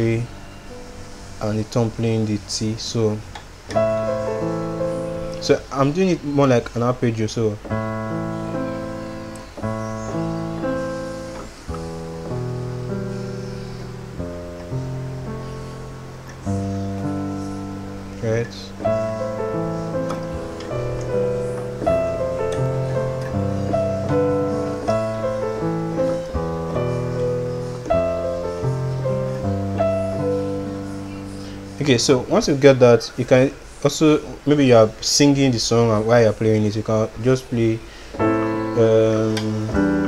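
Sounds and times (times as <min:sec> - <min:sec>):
slow piano arpeggios: 0:00.0 - 0:40.0.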